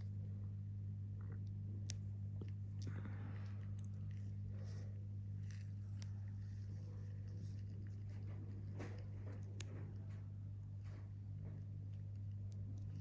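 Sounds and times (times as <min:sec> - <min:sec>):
low electrical hum: 0:00.0 - 0:13.0
scratchy rustles: 0:02.8 - 0:13.0.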